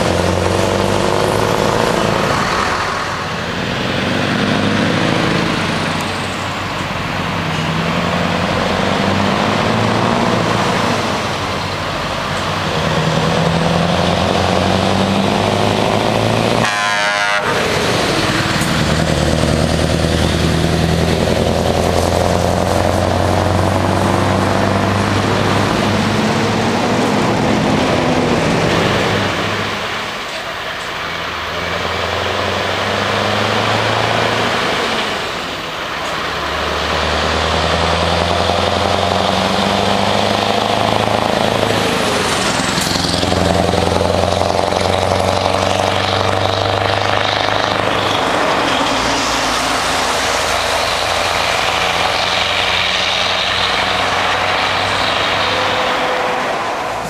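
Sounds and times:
truck accelerating and passing: 0.0s - 57.0s.

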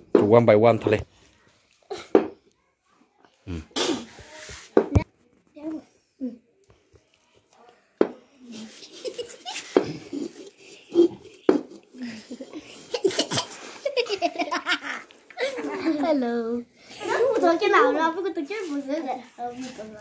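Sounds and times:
children talking: 1.5s - 20.0s
children laughing: 8.5s - 17.3s.

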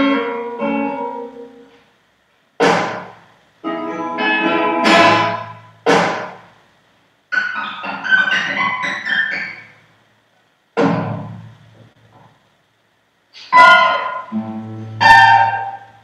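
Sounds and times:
classical guitars playing: 0.0s - 1.7s, 3.6s - 5.7s, 13.5s - 16.0s.

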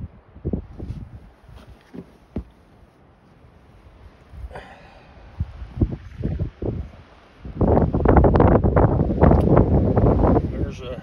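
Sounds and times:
wind buffeting microphone: 0.0s - 2.7s, 3.8s - 11.0s.

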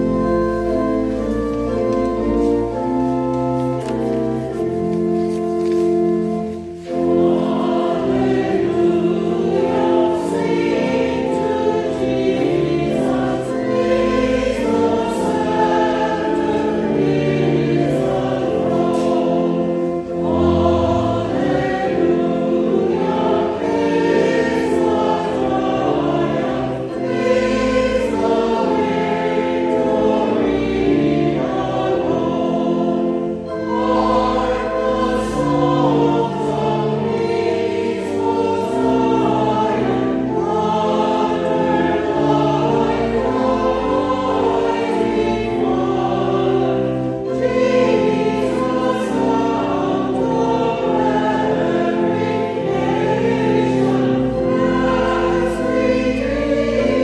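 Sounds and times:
choir singing: 0.0s - 57.0s
sustained chordal accompaniment: 0.0s - 57.0s.

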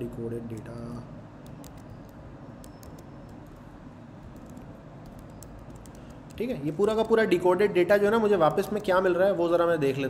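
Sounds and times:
keyboard key clicks: 1.4s - 3.6s, 4.2s - 6.4s.

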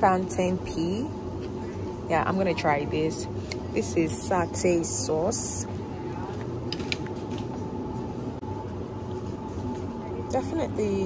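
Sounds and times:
hum of store machinery: 0.0s - 11.0s.

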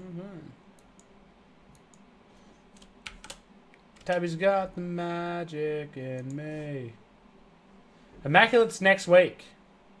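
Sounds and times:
computer keyboard typing: 2.8s - 3.4s
man speaking: 4.1s - 7.0s, 8.2s - 9.6s.

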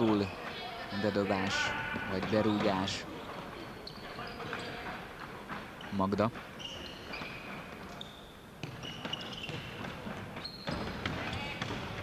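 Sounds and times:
players' footsteps: 1.2s - 12.0s.

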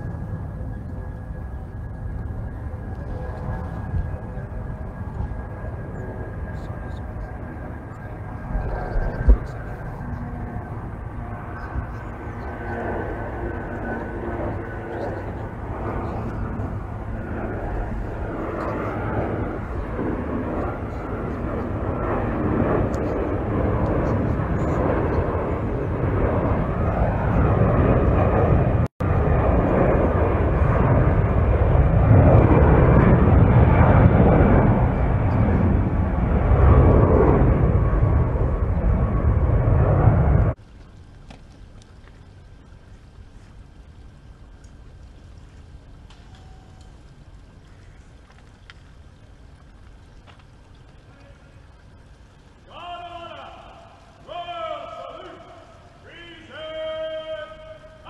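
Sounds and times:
faint steady whine: 0.0s - 58.0s
helicopter turbines and rotors: 0.0s - 58.0s.

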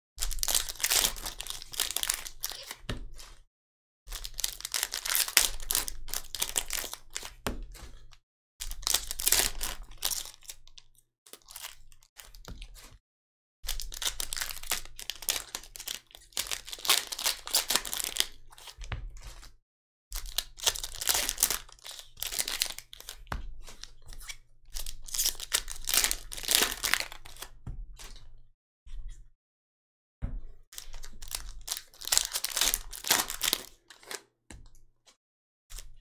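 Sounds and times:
foil wrappers crinkling and tearing: 0.2s - 2.8s, 4.1s - 7.4s, 8.8s - 10.6s, 13.7s - 18.4s, 20.2s - 23.1s, 24.8s - 27.5s, 30.8s - 34.2s.

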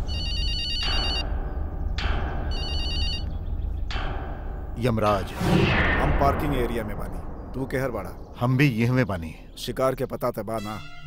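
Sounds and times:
phone ringtone warbling: 0.1s - 1.2s.

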